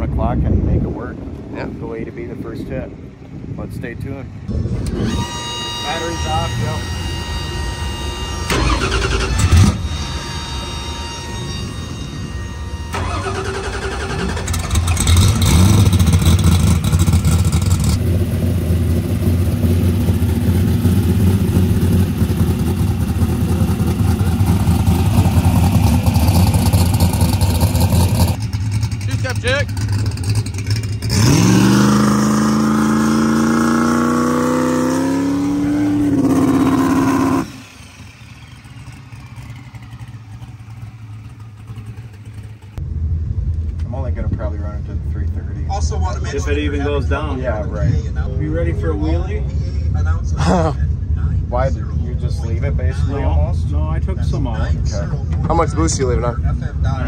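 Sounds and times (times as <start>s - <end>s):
car engine idling and revving: 4.3s - 57.0s.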